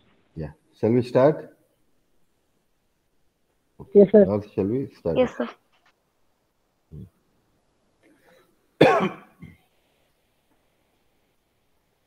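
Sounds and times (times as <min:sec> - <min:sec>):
person clearing throat: 0:08.8 - 0:09.6.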